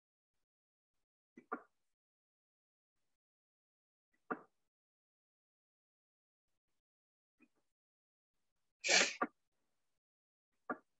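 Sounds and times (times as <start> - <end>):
person sneezing: 8.8 - 9.2.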